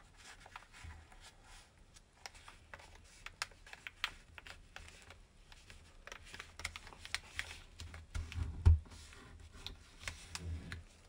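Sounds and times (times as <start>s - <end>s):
paper being folded and creased: 0.0s - 11.0s.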